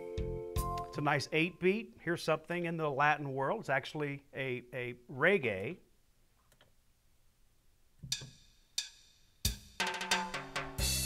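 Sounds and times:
drum rhythm with bass and chords: 0.0s - 1.0s, 8.0s - 11.0s.

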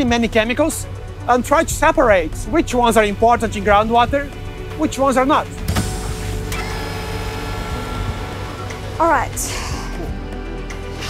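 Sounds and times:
ship machinery hum: 3.0s - 10.3s.

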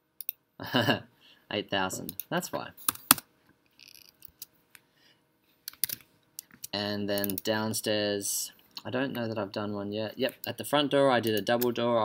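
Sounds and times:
keyboard and mouse clicks: 5.7s - 7.5s.

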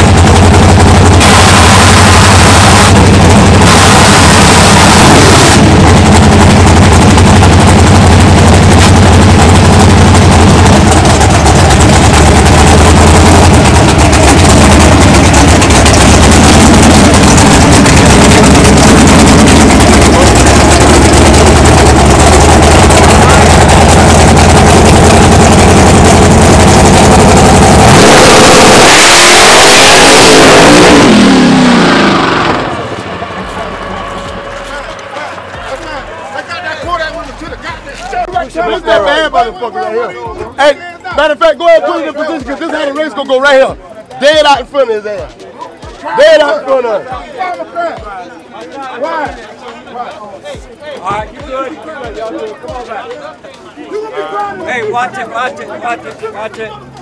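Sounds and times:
drag car engine revving: 0.0s - 38.0s
car pulling away: 0.0s - 39.3s.

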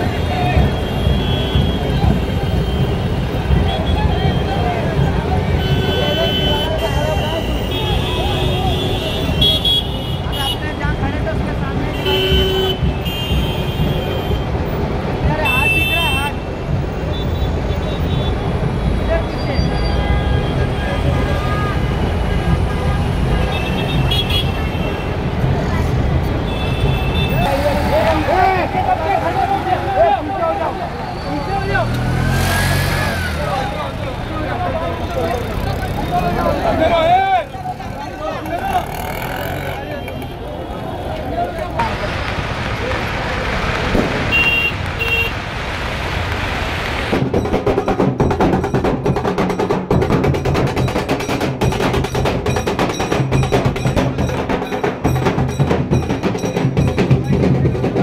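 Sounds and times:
vehicle horns honking: 0.0s - 4.6s, 5.4s - 11.0s, 11.9s - 14.6s, 15.4s - 18.6s, 19.5s - 25.2s, 26.4s - 28.4s, 44.3s - 45.4s
crowd voices: 0.0s - 45.4s, 47.1s - 58.0s
engines rumbling in traffic: 0.0s - 58.0s.

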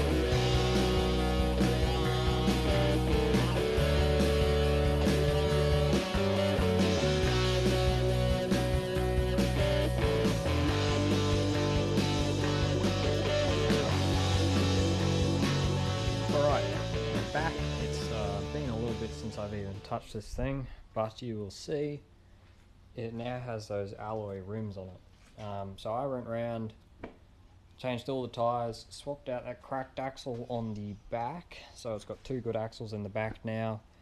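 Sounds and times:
guitar-led rock music: 0.0s - 19.9s.

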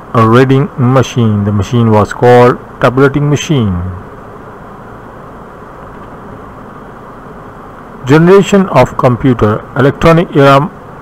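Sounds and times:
steady background rumble and hiss: 0.0s - 11.0s.

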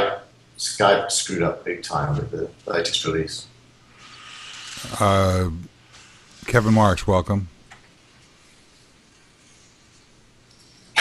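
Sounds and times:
call line hiss: 3.9s - 7.4s.

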